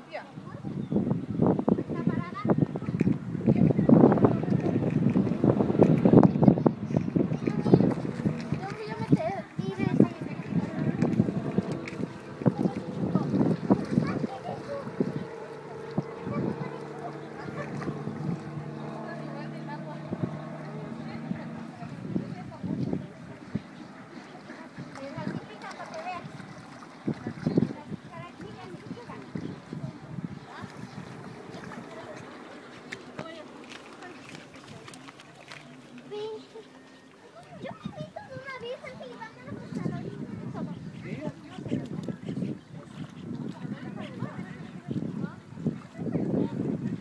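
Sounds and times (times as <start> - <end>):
wind buffeting microphone: 0.0 - 35.1, 37.4 - 47.0
water sloshing from wading: 0.0 - 47.0.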